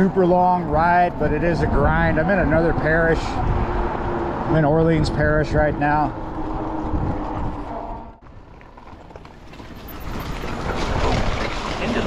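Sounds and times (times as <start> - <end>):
bike tyre rumble: 0.0 - 12.0
wind on microphone: 0.0 - 12.0.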